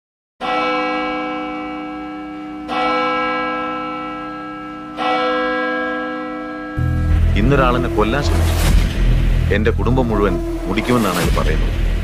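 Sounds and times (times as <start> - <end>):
large bell tolling: 0.4 - 12.0.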